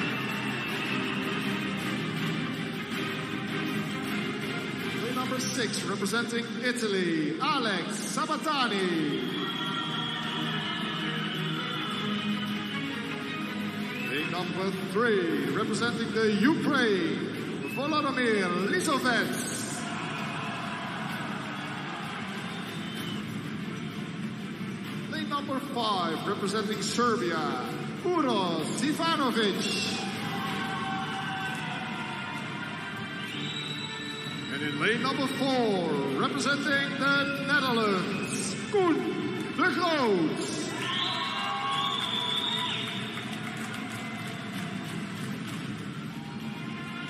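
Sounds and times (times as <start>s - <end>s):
indoor crowd din: 0.0s - 47.0s.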